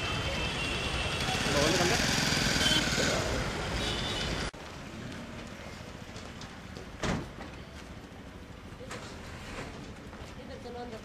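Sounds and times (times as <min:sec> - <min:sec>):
street traffic: 0:00.0 - 0:11.0
people talking: 0:10.3 - 0:11.0.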